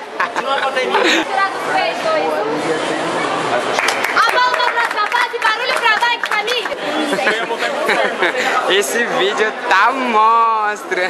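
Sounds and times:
young people chattering: 0:00.0 - 0:11.0.

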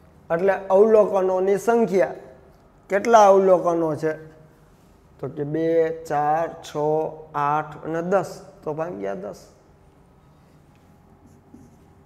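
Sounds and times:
low room hum: 0:00.0 - 0:12.0
marker squeaking on whiteboard: 0:11.1 - 0:12.0.

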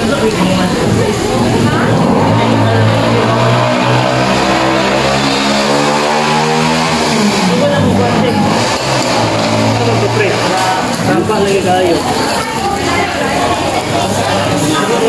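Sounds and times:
restaurant chatter: 0:00.0 - 0:15.0
vehicle engine humming: 0:00.0 - 0:15.0.

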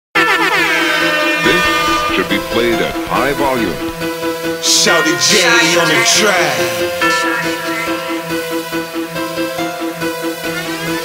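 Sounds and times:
air horn with falling pitch: 0:00.2 - 0:04.1
person's voice: 0:01.4 - 0:04.0, 0:04.6 - 0:07.0
hip-hop beat with bass: 0:01.4 - 0:09.0.

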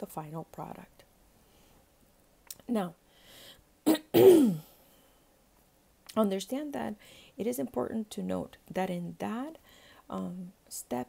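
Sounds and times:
person clearing throat: 0:03.9 - 0:04.8.

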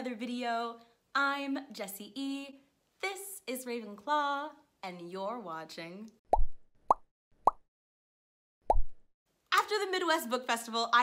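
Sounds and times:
cartoon plop pop effects: 0:06.3 - 0:07.6, 0:08.6 - 0:09.0.

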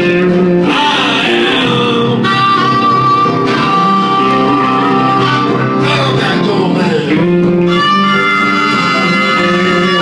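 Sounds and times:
blues band playing: 0:00.0 - 0:10.0
blues harmonica: 0:00.0 - 0:10.0.

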